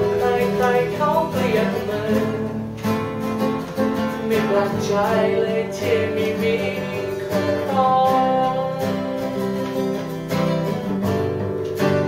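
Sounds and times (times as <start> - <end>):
man singing: 0.0 - 2.9, 3.9 - 10.2
acoustic guitars strumming: 0.0 - 12.0.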